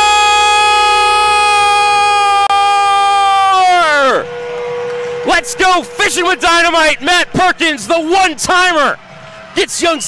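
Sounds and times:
goal horn blaring: 0.0 - 7.9.

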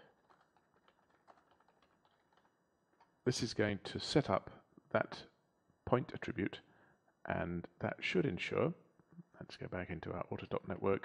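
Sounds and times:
faint keyboard typing: 0.0 - 3.2.

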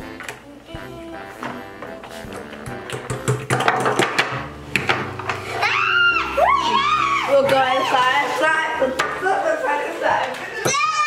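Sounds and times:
children chattering and shouting: 5.4 - 11.0.

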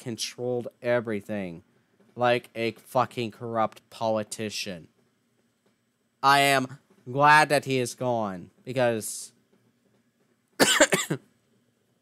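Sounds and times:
man coughing: 10.6 - 11.3.

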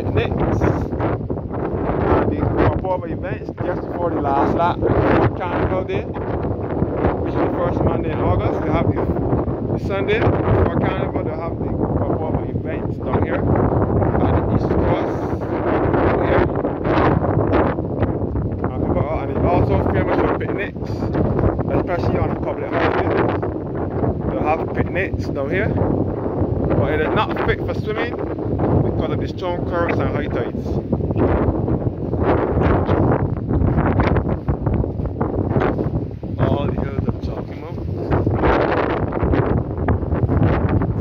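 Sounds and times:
wind blowing across microphone: 0.0 - 41.0.

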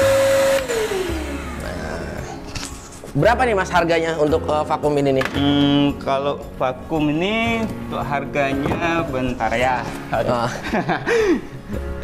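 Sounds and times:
shop vacuum running: 0.0 - 2.2
vacuum motor winding down: 0.0 - 2.2.

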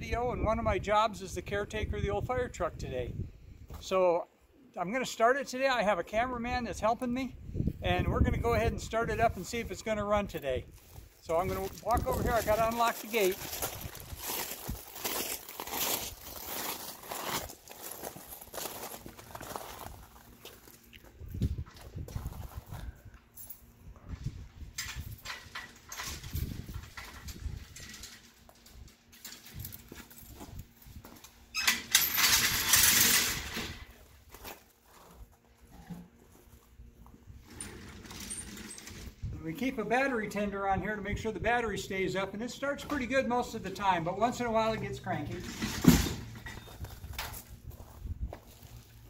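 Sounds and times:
footsteps on gravel: 10.7 - 23.0, 46.6 - 49.0
metal gate scraping rattle: 24.8 - 29.9, 31.5 - 34.0, 37.4 - 39.2, 44.5 - 46.8.

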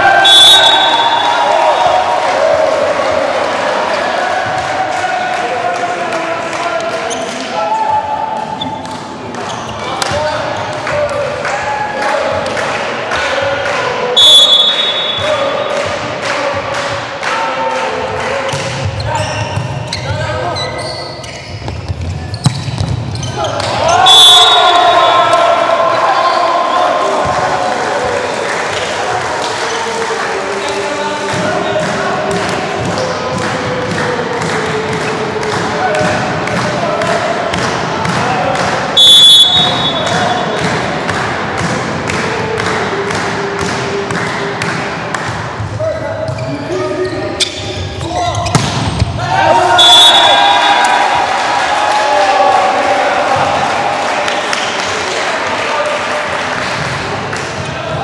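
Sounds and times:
players shouting: 0.0 - 8.7, 23.2 - 44.7, 45.9 - 58.0
referee whistle: 0.1 - 2.0, 14.2 - 15.5, 22.3 - 25.5, 39.0 - 40.5, 49.7 - 51.2.

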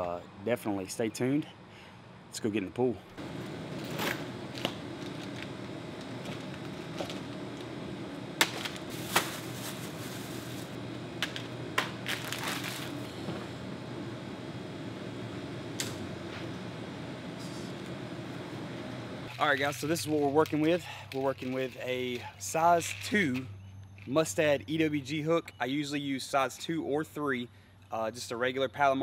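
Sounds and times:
steady low hum: 0.0 - 21.2
rustling plastic packs and bag: 8.4 - 13.3.

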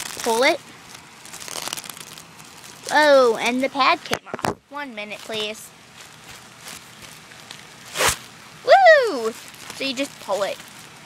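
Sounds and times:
faint rustling and handling noise: 0.0 - 11.0.

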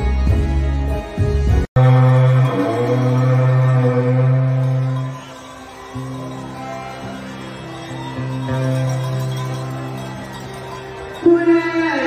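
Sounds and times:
band holding long low note: 1.8 - 8.0.

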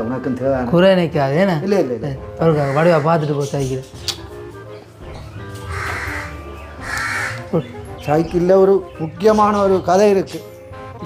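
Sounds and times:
background music: 0.0 - 11.0
crow cawing: 2.5 - 3.3, 5.1 - 7.6.

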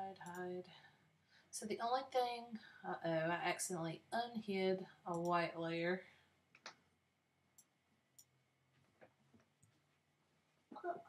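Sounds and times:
faint computer mouse clicks: 5.1 - 5.4.

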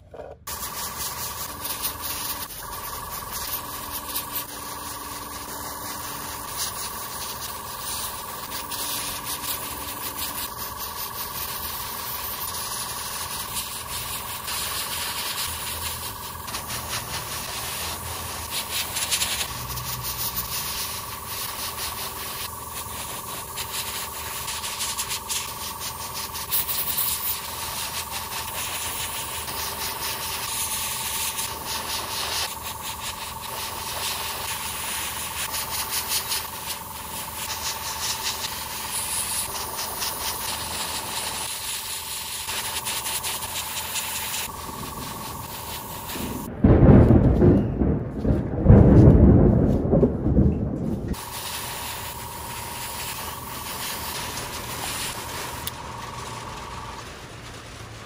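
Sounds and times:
steady hum: 0.0 - 58.0
airbrush spraying hiss: 0.4 - 50.0, 50.6 - 58.0.

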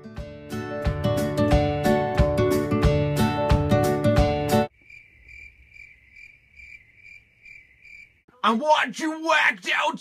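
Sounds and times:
crickets chirping: 4.7 - 8.4.

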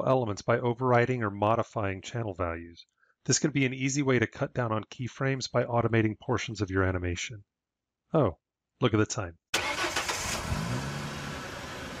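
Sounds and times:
car engine: 9.6 - 12.0.

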